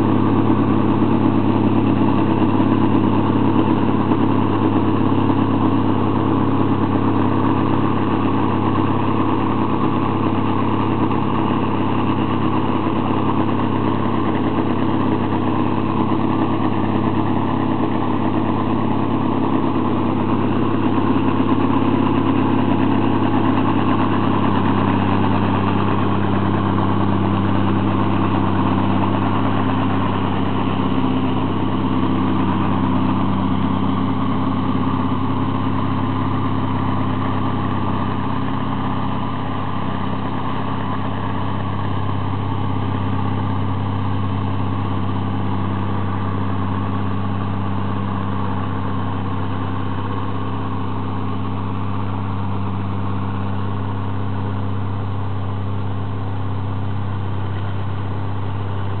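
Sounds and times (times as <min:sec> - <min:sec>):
diesel engine under heavy load: 0:00.0 - 0:59.0.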